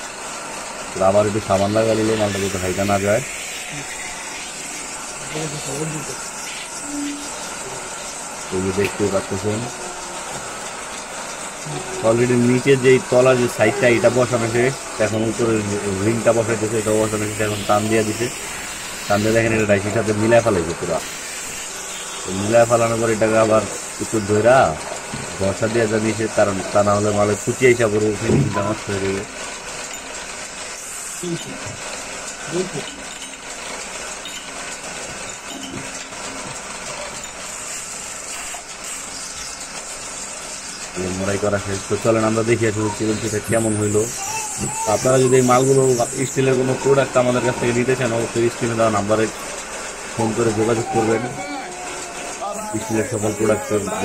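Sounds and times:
lathe running with steady hiss: 0.0s - 54.0s.

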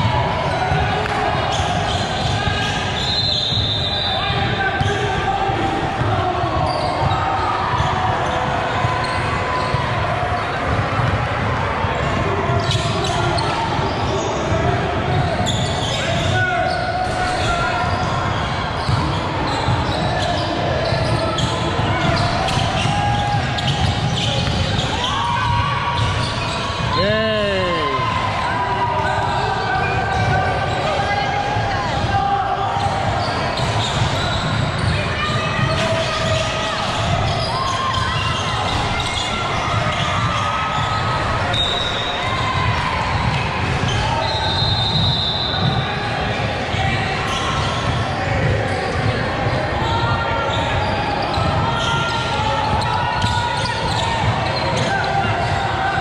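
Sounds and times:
voices echoing in hall: 0.0s - 56.0s.

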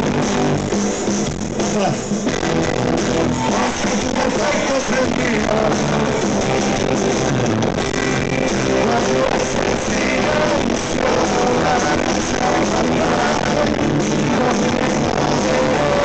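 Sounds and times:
electric guitars: 0.0s - 16.0s
rock band playing live: 0.0s - 16.0s
lead voice singing: 3.0s - 16.0s.

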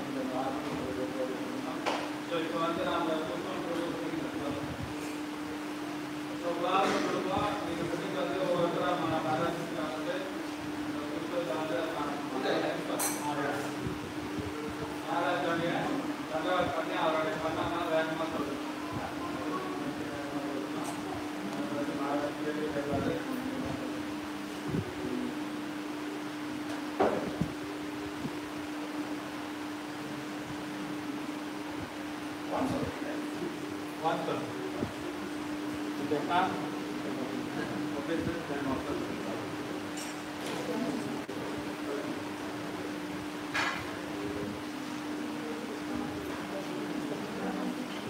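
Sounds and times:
steady low hum: 0.0s - 48.0s
man speaking into a microphone: 15.0s - 20.8s.

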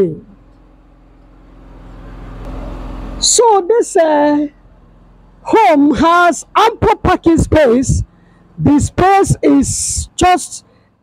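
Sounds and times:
road noise: 0.0s - 11.0s
vehicle engine approaching: 0.0s - 11.0s.

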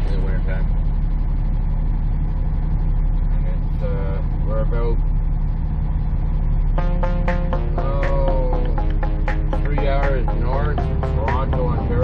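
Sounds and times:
diesel truck engine idling: 0.0s - 12.0s.

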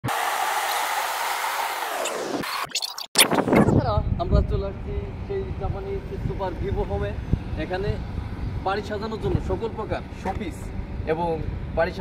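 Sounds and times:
road and wind noise in car: 3.3s - 12.0s.

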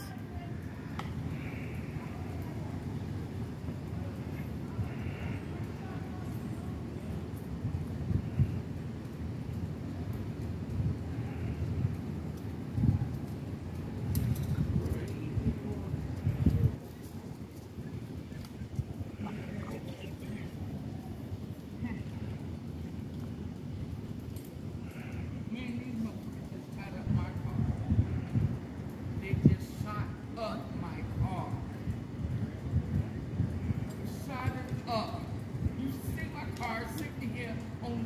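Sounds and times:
faint distant voices: 0.0s - 9.1s, 10.9s - 31.9s
low outdoor rumble: 0.0s - 38.0s.

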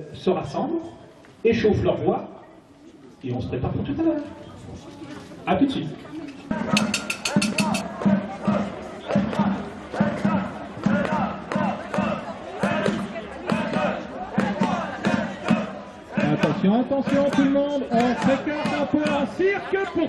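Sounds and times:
crowd voices in the street: 0.0s - 20.0s
steady drum beat: 6.5s - 19.4s.

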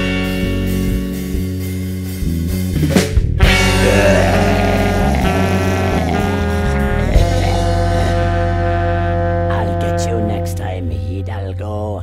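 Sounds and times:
electric guitar chords: 0.0s - 9.6s
bass guitar: 0.0s - 12.0s.

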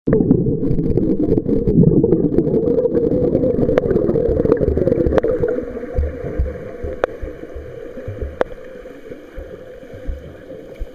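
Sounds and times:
underwater churning and bubbling: 0.1s - 10.9s
low underwater thuds: 3.6s - 10.9s.

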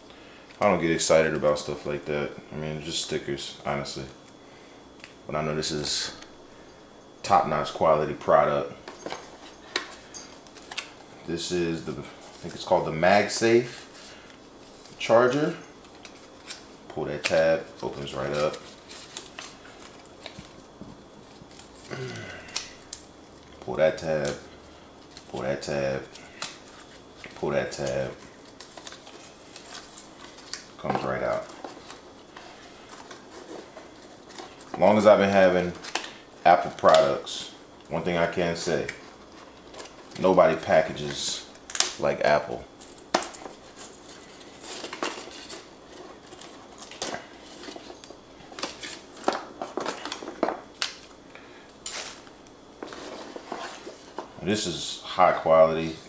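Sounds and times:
paper and cable rustling: 9.0s - 11.0s, 11.8s - 37.2s, 38.3s - 42.1s, 42.7s - 51.2s, 51.8s - 54.7s.

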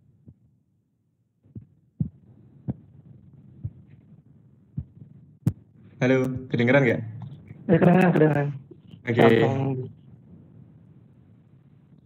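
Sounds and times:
faint background noise: 1.4s - 12.0s.

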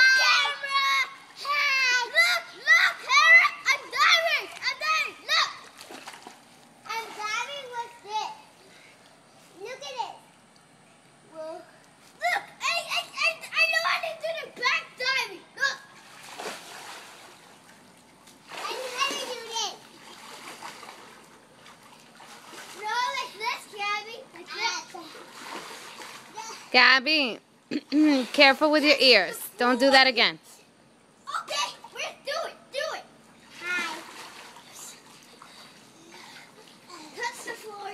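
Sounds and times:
children calling and squealing: 0.0s - 5.8s, 11.3s - 16.0s, 18.5s - 19.9s, 31.2s - 34.2s
splashing in pool water: 0.0s - 8.4s, 15.7s - 27.0s, 33.3s - 37.9s.

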